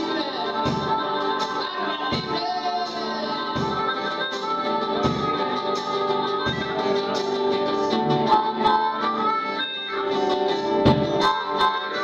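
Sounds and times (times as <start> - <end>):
acoustic guitar: 0.0 - 12.0
harmonica playing blues: 0.0 - 12.0.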